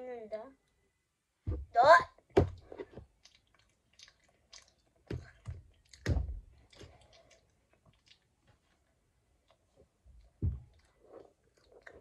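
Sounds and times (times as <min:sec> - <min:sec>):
person chewing: 0:02.6 - 0:08.5, 0:09.4 - 0:12.0.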